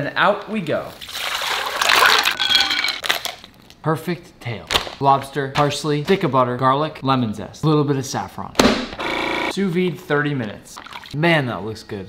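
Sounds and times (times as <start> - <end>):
water pouring and splashing: 1.0 - 3.0, 10.8 - 11.2.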